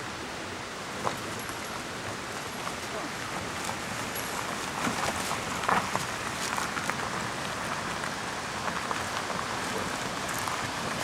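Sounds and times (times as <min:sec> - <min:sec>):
rushing background noise: 0:00.0 - 0:11.0
tyres rolling over stones and leaves: 0:00.9 - 0:11.0.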